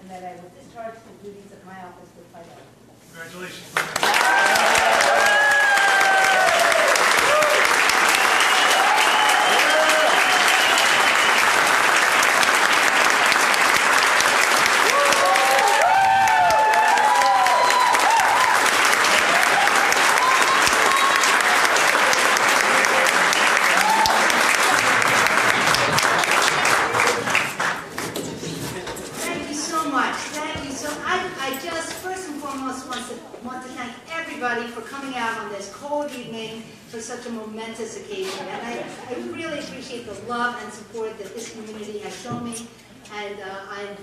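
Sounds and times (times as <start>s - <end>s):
audience applauding: 3.8s - 28.6s
cheering voices: 4.0s - 27.5s.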